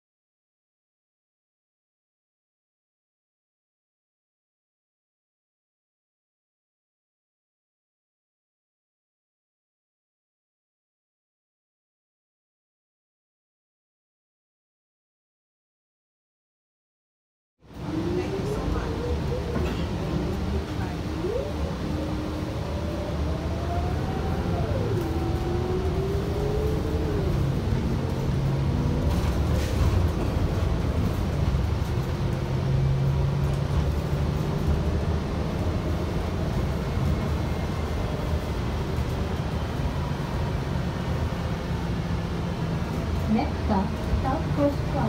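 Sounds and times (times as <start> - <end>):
bus engine and road rumble: 17.6 - 45.0
drivetrain whine: 17.7 - 45.0.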